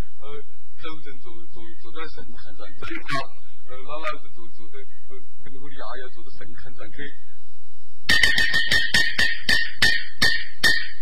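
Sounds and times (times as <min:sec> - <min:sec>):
metallic ring: 0:08.1 - 0:11.0.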